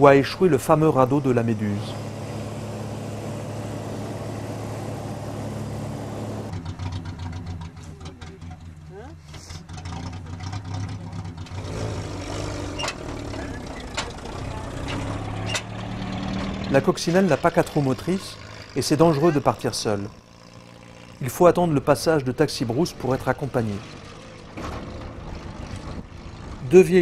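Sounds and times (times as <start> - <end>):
aircraft engine drone: 0.0 - 7.3, 16.8 - 24.4.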